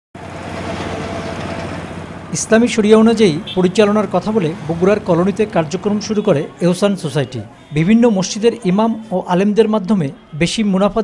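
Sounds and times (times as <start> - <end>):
passing vehicles: 0.2 - 11.0.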